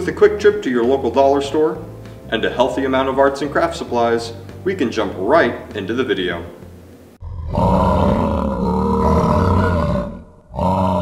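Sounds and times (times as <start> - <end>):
long deep roar: 7.2 - 11.0.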